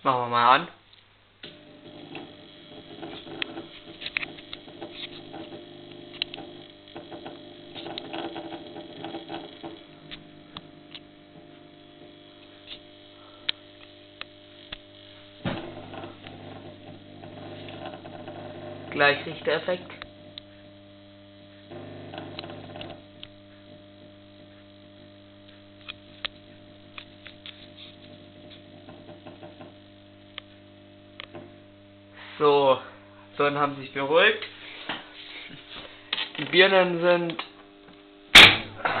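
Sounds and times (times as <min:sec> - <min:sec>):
clicks and crackles: 0:00.9 - 0:18.6, 0:21.7 - 0:31.5
lamp ballasts humming: 0:00.9 - 0:39.0.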